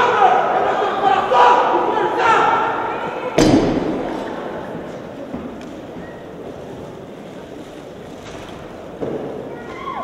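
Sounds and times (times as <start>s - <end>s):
crowded gymnasium rumble: 0.0s - 10.0s.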